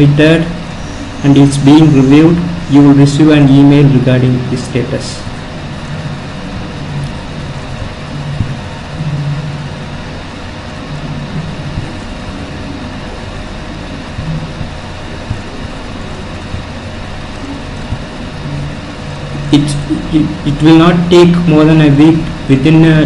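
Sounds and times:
low hum: 0:00.0 - 0:23.0.

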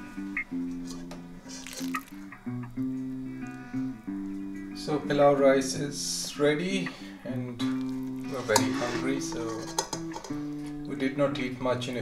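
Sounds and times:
acoustic guitar music: 0:00.0 - 0:12.0.

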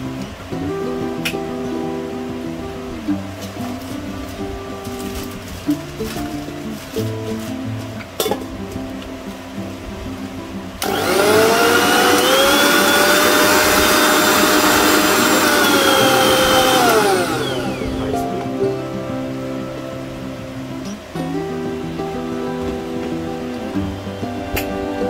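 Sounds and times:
mixer grinder motor whining: 0:10.8 - 0:18.1.

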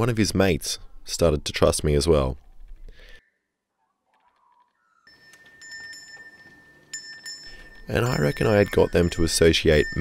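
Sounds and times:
metal handbell ringing: 0:05.1 - 0:10.0.

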